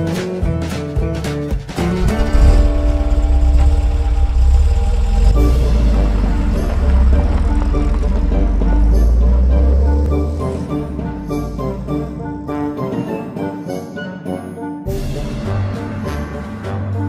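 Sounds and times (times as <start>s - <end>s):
background music: 0.0s - 17.0s
car engine running: 1.8s - 12.4s.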